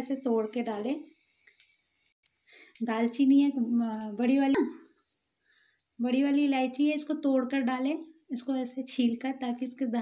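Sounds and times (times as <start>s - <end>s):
seeds sizzling in hot oil: 0.0s - 10.0s.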